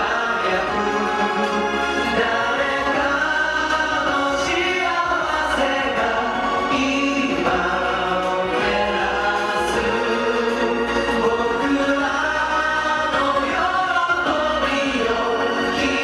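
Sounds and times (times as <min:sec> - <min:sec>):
male vocal group singing: 0:00.0 - 0:16.0
strings and piano accompaniment: 0:00.0 - 0:16.0.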